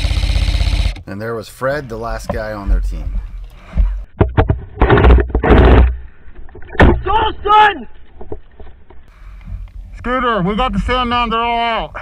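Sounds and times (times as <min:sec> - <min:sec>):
airsoft machine gun full-auto fire: 0:00.0 - 0:01.0
man shouting: 0:07.0 - 0:07.9.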